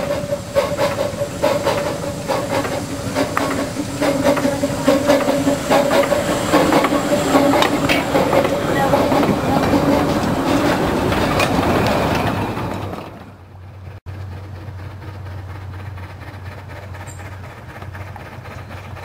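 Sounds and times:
steam train passing: 0:00.0 - 0:19.0
wheels clicking over rail joints: 0:00.0 - 0:19.0.

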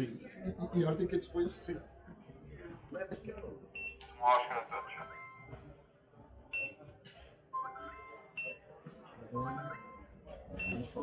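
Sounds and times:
ticket scanner beep: 0:06.6 - 0:06.8, 0:07.6 - 0:08.7, 0:09.4 - 0:11.0.

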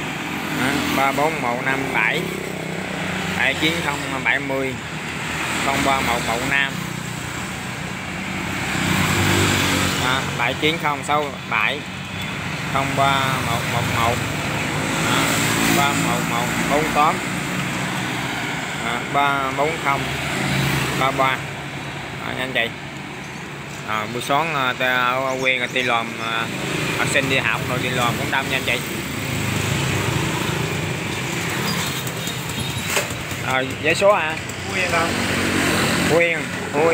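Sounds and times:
man speaking: 0:00.0 - 0:02.5, 0:03.3 - 0:04.9, 0:05.6 - 0:06.9, 0:09.9 - 0:12.0, 0:12.6 - 0:17.3, 0:18.7 - 0:20.2, 0:21.0 - 0:21.6, 0:22.2 - 0:22.8, 0:23.9 - 0:29.0, 0:33.4 - 0:35.2, 0:36.0 - 0:36.9
road traffic hum: 0:00.0 - 0:36.9.

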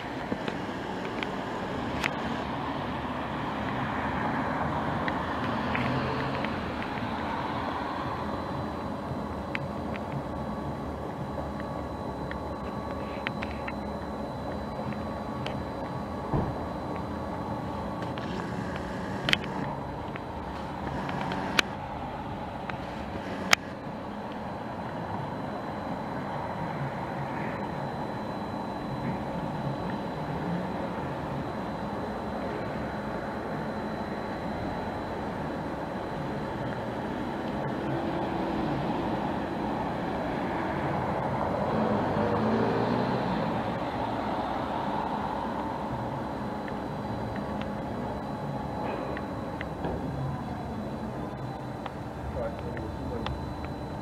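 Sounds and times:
constant mechanical hum: 0:00.0 - 0:54.0
sharp clicks: 0:18.0 - 0:21.8.

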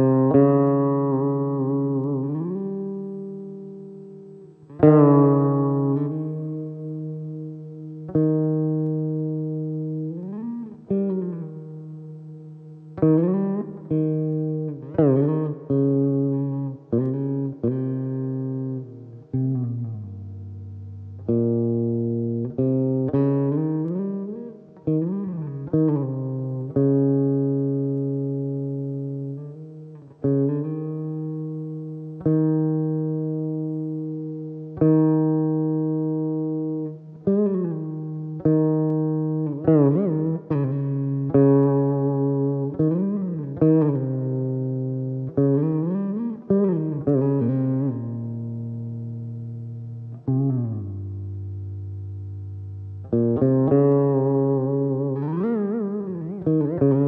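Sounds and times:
plucked veena melody: 0:00.0 - 0:57.0.

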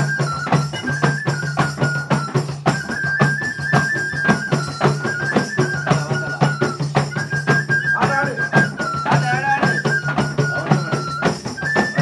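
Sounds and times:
flute playing folk melody: 0:00.0 - 0:12.0
tambourines and frame drums: 0:00.0 - 0:12.0.

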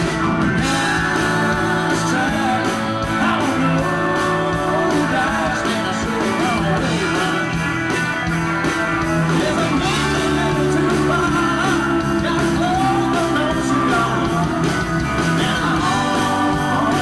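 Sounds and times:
live country band playing: 0:00.0 - 0:17.0.

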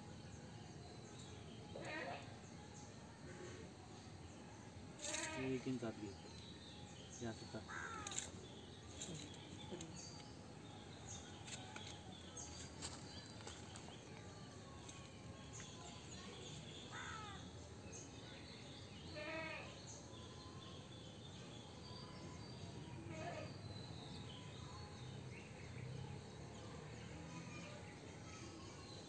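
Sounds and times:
faint outdoor background noise: 0:00.0 - 0:29.0
animal bleating: 0:01.8 - 0:02.3, 0:05.0 - 0:05.6, 0:19.1 - 0:19.8, 0:23.1 - 0:23.5.

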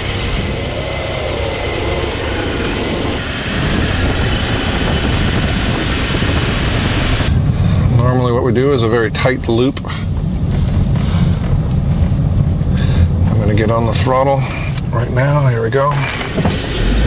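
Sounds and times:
tyre and road noise: 0:00.0 - 0:17.0
wind rumble: 0:00.0 - 0:17.0.

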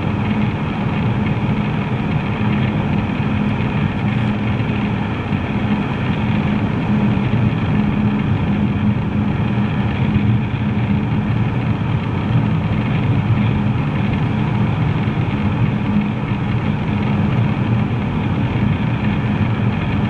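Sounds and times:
car cabin road and engine noise: 0:00.0 - 0:20.0.

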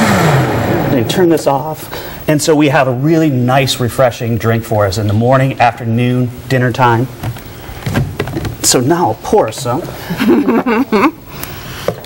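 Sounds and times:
person talking or laughing: 0:10.0 - 0:11.2.

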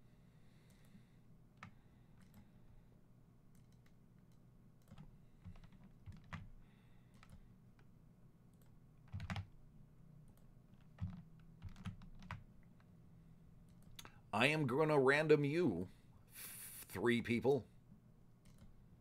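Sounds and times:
low steady hum: 0:00.0 - 0:19.0
computer keyboard keystrokes: 0:01.6 - 0:02.5, 0:03.5 - 0:07.4, 0:08.5 - 0:09.5, 0:10.2 - 0:12.5, 0:18.4 - 0:18.8.

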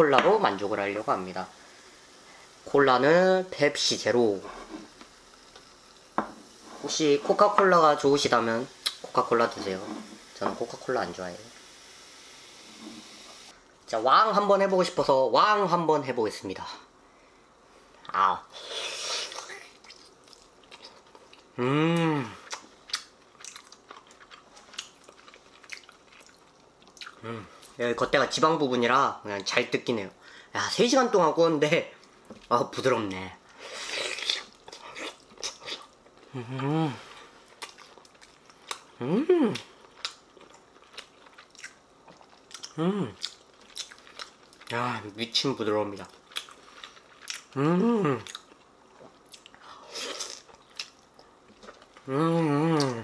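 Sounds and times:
mouth chewing food: 0:22.4 - 0:27.8, 0:37.4 - 0:44.9, 0:45.9 - 0:52.1.

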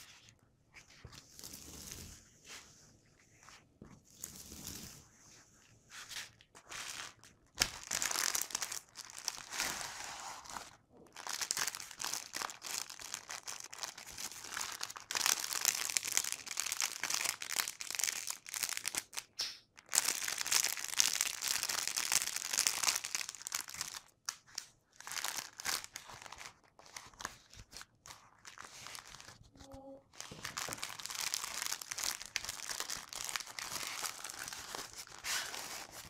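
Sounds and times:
bubble wrap crinkling: 0:00.0 - 0:02.6, 0:05.9 - 0:36.0.

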